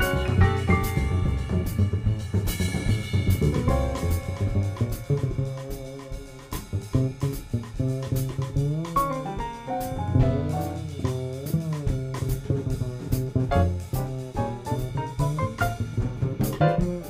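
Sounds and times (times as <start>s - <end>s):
piano: 0.0s - 7.9s, 9.0s - 11.3s, 13.3s - 17.0s
double bass: 0.0s - 17.0s
drum kit: 0.0s - 17.0s.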